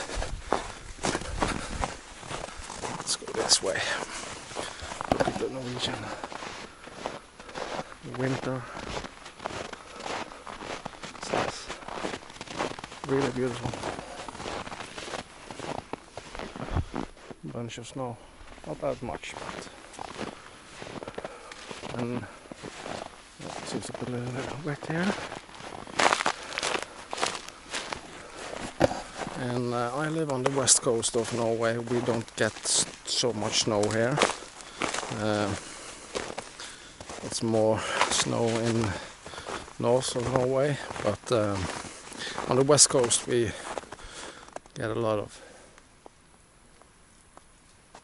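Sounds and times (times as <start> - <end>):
footsteps crunching through wet snow: 0.0 - 46.2, 46.8 - 48.0
faint outdoor hiss: 0.0 - 48.0.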